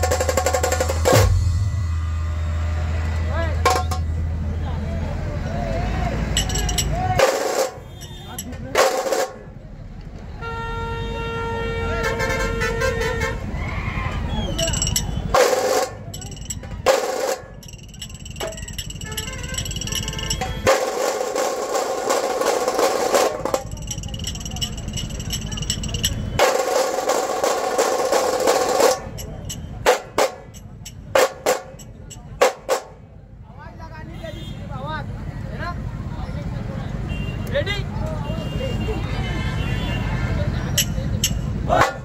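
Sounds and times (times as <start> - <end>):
fast drum roll: 0.0 - 1.6, 18.4 - 29.3
low rumble of crowd: 0.0 - 42.0.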